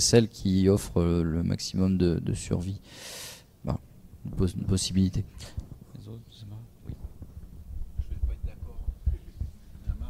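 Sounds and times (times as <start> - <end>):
microphone handling thumps: 6.8 - 10.0.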